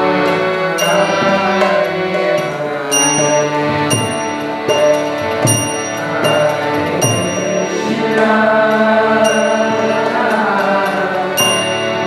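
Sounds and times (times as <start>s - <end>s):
harmonium chords: 0.0s - 12.0s
ringing metallic strike: 2.9s - 8.0s, 9.2s - 10.0s, 11.4s - 12.0s
group chanting: 6.1s - 12.0s.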